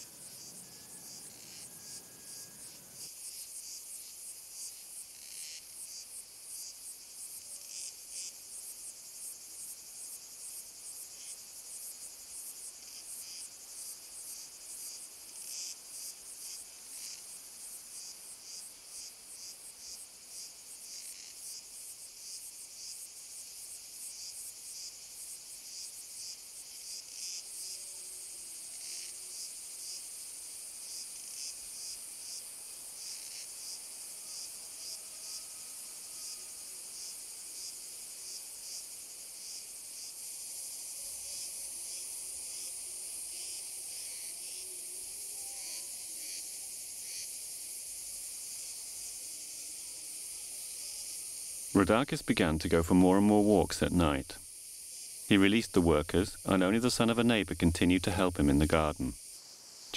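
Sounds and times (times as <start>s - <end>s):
insects chirping: 0.0s - 59.9s.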